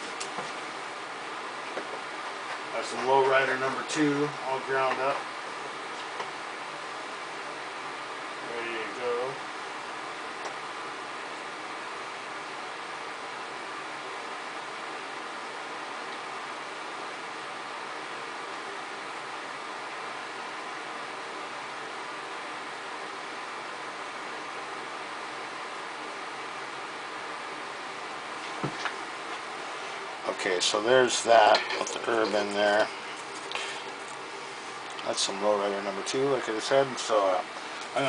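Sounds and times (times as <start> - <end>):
faint hum: 0.0 - 38.0
steady background hiss: 0.0 - 38.0.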